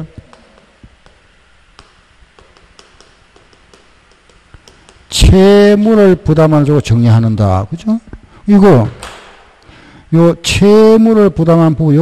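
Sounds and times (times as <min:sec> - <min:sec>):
chalk tapping on a blackboard: 0:00.0 - 0:06.0
low steady room noise: 0:00.0 - 0:12.0
footsteps: 0:00.2 - 0:05.4.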